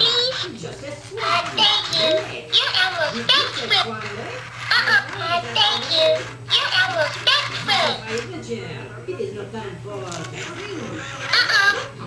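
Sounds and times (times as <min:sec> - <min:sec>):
toy high-pitched voice: 0:00.0 - 0:00.5, 0:01.2 - 0:04.0, 0:04.7 - 0:08.1, 0:11.0 - 0:11.9.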